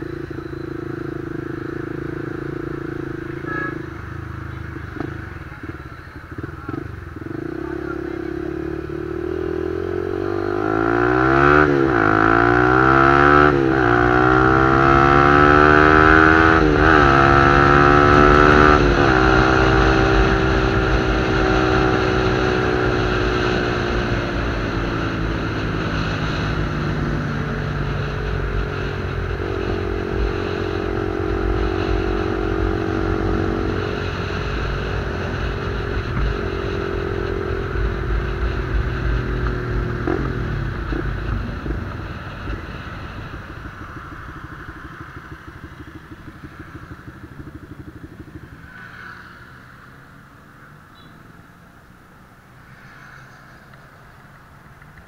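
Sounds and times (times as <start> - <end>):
motorcycle accelerating through gears: 0.0 - 55.0.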